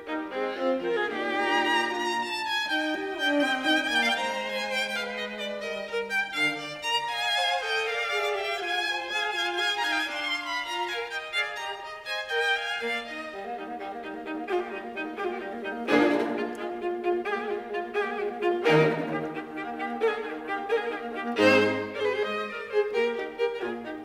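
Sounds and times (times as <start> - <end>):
low cello: 0.0 - 24.0
string quintet playing: 0.0 - 24.0.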